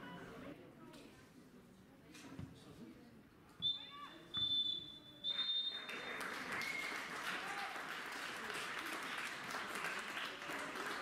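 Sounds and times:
spectators clapping: 0:05.3 - 0:11.0.

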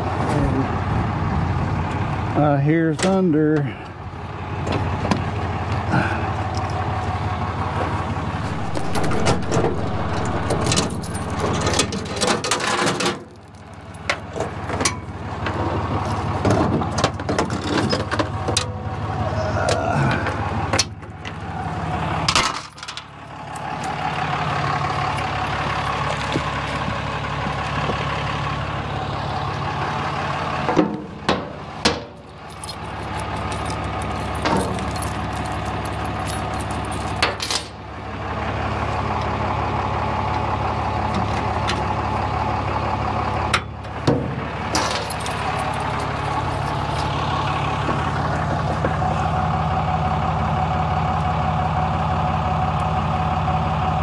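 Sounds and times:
pickup truck engine idling: 0:03.5 - 0:54.0
metal hitch clicks and clanks: 0:08.4 - 0:28.0, 0:30.6 - 0:37.8, 0:43.5 - 0:49.1.

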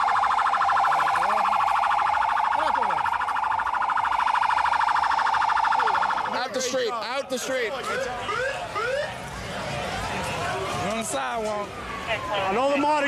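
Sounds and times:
police siren fast-pulsing tone: 0:00.0 - 0:09.2
faint crowd voices: 0:00.0 - 0:13.0.

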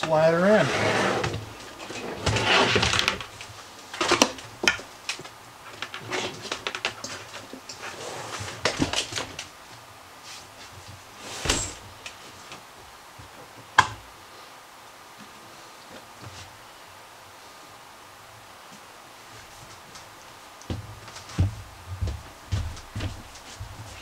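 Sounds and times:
plastic case scraping: 0:00.5 - 0:03.4.

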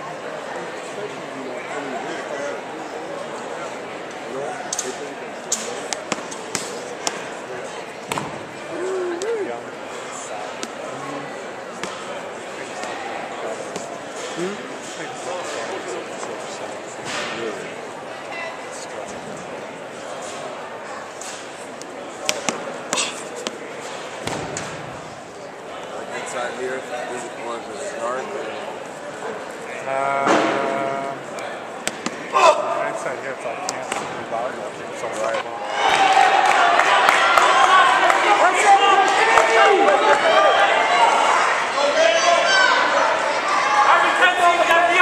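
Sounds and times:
spectators chattering: 0:00.0 - 0:45.0
heavy thud of shot put: 0:08.0 - 0:08.6, 0:22.2 - 0:25.2.

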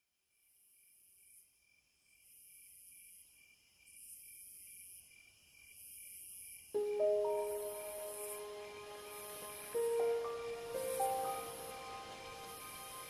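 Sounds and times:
airy high hiss: 0:06.8 - 0:13.0
loud sustained synth chord: 0:07.2 - 0:13.0.

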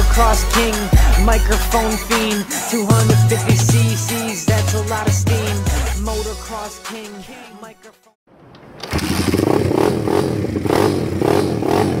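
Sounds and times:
dirt bike engine running: 0:08.9 - 0:12.0.

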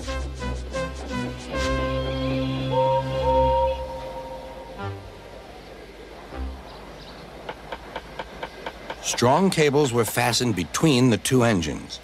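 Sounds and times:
background music: 0:00.0 - 0:05.4, 0:06.3 - 0:06.8
steam locomotive whistle: 0:01.1 - 0:05.0.

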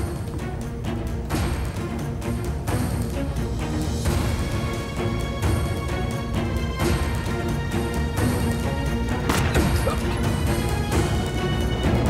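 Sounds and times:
tense drama music: 0:00.0 - 0:12.0.

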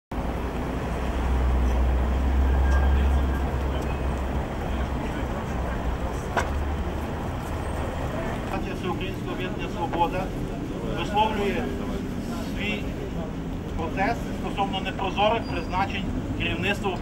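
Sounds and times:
street traffic rumble: 0:00.1 - 0:17.0.

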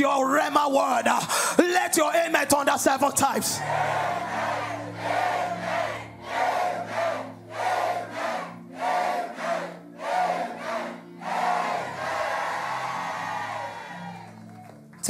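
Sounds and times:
congregation shouting together: 0:03.5 - 0:14.3.

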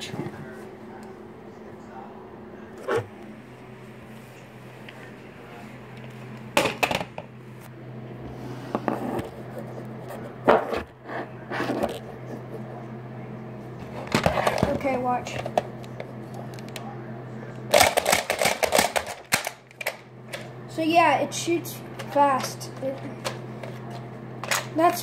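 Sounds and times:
steady low hum: 0:00.0 - 0:25.0
sharp plastic clacks: 0:17.7 - 0:20.4.

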